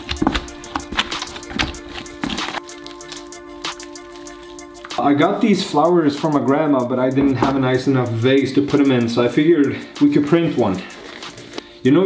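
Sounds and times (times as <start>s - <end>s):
wet clay squelching: 0.0s - 5.4s
background music: 0.0s - 12.0s.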